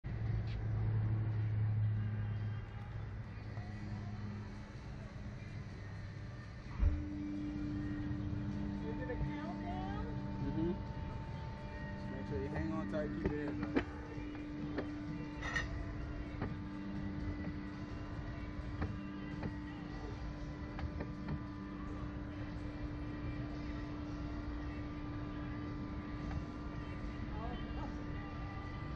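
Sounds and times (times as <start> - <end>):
low motor hum: 0.0 - 28.9
outdoor background noise: 0.0 - 28.9.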